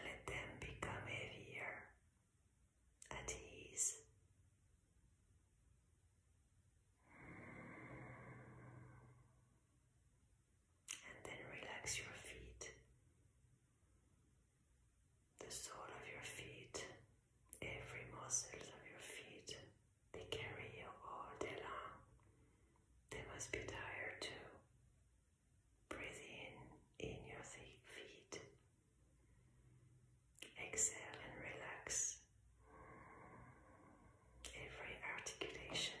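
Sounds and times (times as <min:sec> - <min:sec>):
woman whispering: 0:00.0 - 0:02.0, 0:03.0 - 0:04.1, 0:10.9 - 0:12.8, 0:15.4 - 0:22.1, 0:23.1 - 0:24.7, 0:25.9 - 0:28.5, 0:30.4 - 0:32.3, 0:34.4 - 0:36.0.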